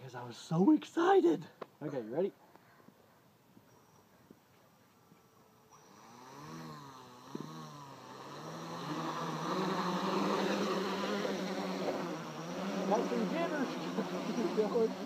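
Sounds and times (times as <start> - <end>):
drone motors buzzing: 5.7 - 15.0.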